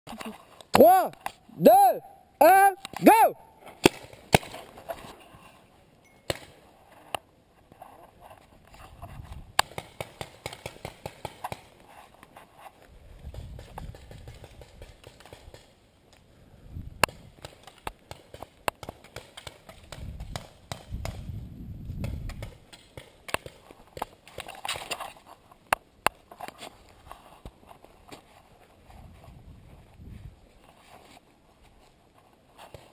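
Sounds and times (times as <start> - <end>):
paintball markers firing: 9.6 - 11.7, 13.3 - 15.8, 17.0 - 21.3.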